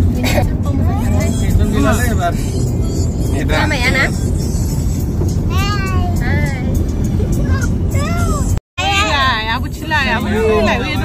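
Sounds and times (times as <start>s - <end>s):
car road and engine rumble: 0.0s - 11.0s
high-pitched vocal phrases: 5.5s - 6.7s, 7.4s - 9.3s.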